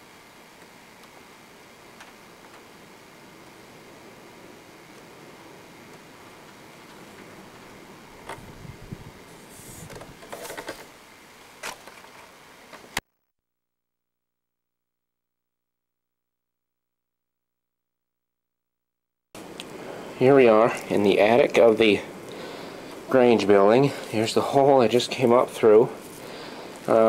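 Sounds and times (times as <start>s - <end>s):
camcorder hiss: 0.0s - 13.0s, 19.4s - 27.0s.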